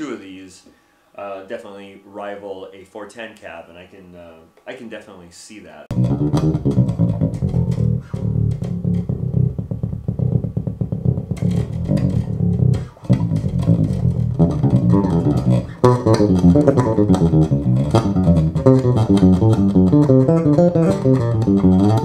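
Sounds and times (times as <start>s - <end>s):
electric bass playing quick notes: 5.9s - 22.0s.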